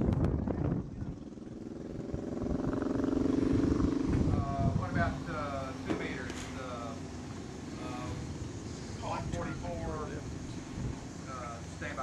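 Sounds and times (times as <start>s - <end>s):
wind rumble on microphone: 0.0s - 5.7s, 8.2s - 11.4s
engine drone: 0.0s - 12.0s.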